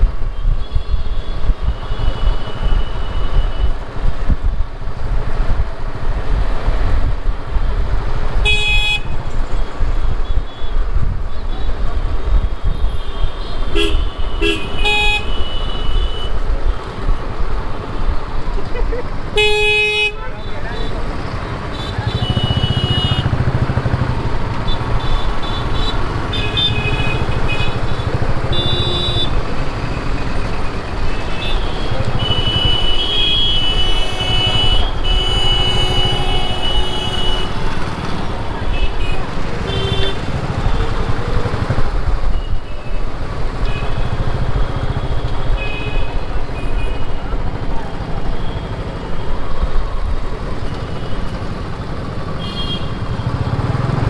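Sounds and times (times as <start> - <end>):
wind on microphone: 0.0 - 13.0
rumble of traffic engines: 0.0 - 54.0
vehicle horns honking: 8.4 - 9.2, 12.6 - 16.4, 19.3 - 23.4, 24.6 - 29.4, 31.0 - 38.0, 38.6 - 40.9, 43.6 - 47.2, 52.4 - 53.4.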